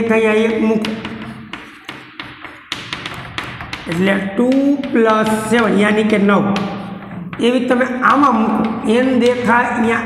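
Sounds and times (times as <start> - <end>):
chalk tapping and scratching on blackboard: 0.0 - 9.8.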